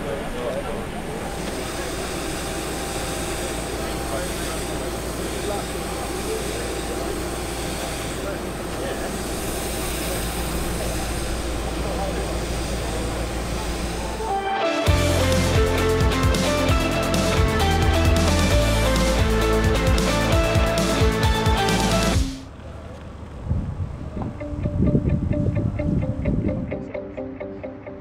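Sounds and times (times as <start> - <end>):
people chatting: 0.0 - 2.5, 3.2 - 14.3
jet airliner engine noise: 0.0 - 22.1.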